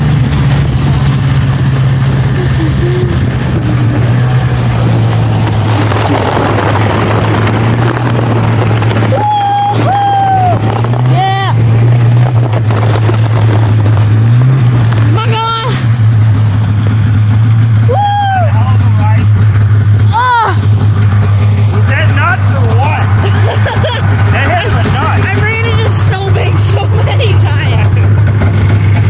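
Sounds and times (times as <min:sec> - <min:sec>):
snowmobile engine droning: 0:00.0 - 0:29.0
riders yelling: 0:09.0 - 0:11.6, 0:17.8 - 0:19.2
voices: 0:21.7 - 0:28.2.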